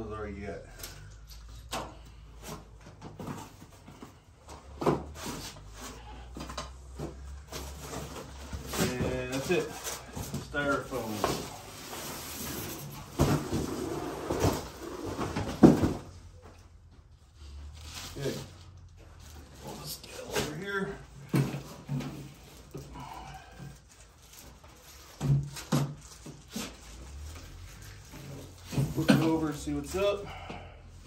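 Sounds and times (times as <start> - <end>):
cardboard rustling and scraping: 2.4 - 16.5, 17.4 - 30.2.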